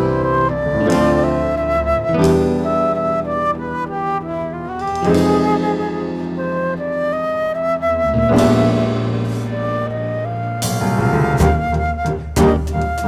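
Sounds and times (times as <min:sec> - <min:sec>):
drum kit: 0:00.0 - 0:03.7, 0:04.6 - 0:13.0
flute melody: 0:00.0 - 0:13.0.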